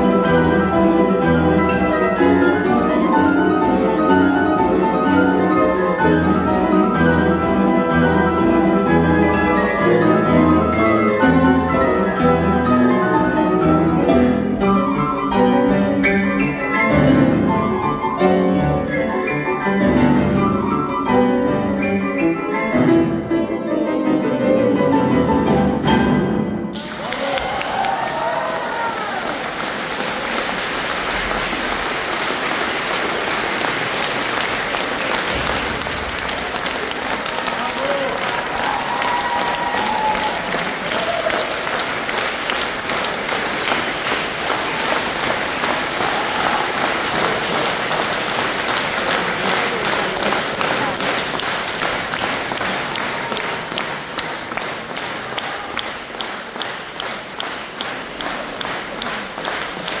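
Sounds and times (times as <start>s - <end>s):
audience applauding: 26.7s - 60.0s
rhythmic clapping in unison: 26.7s - 60.0s.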